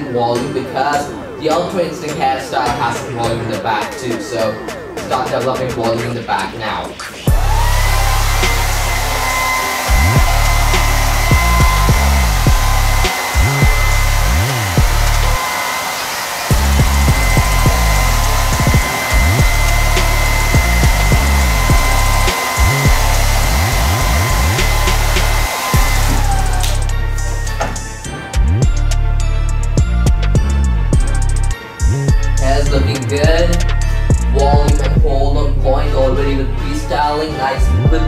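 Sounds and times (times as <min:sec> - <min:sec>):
hair dryer running: 0:07.3 - 0:28.8.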